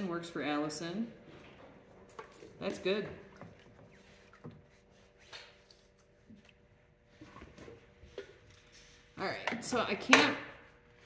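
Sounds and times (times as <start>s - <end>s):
water sloshing: 1.2s - 8.5s.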